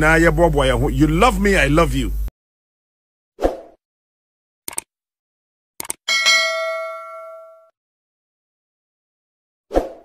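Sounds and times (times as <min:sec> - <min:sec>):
bright metallic bell ding: 0:06.1 - 0:07.7.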